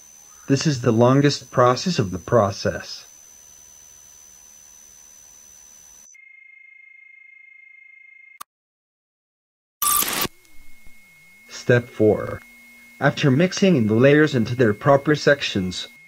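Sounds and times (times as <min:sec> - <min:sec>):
chord of electronic tones: 0:09.8 - 0:16.0
electronic tone sliding downward: 0:09.8 - 0:16.0
thin steady electronic tone: 0:09.8 - 0:16.0.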